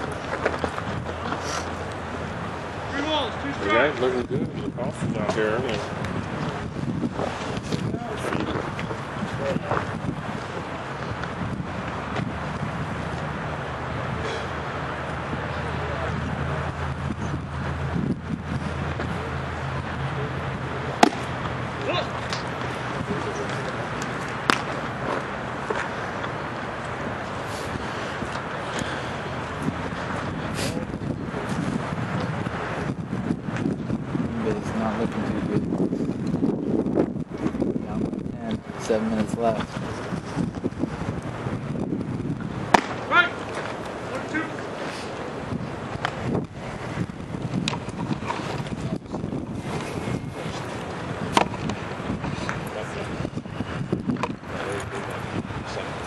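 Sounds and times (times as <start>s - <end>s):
distant road traffic: 0.0s - 56.0s
wind buffeting microphone: 0.0s - 56.0s
baseball smacking into glove: 21.0s - 21.3s, 24.4s - 24.8s, 42.7s - 43.7s.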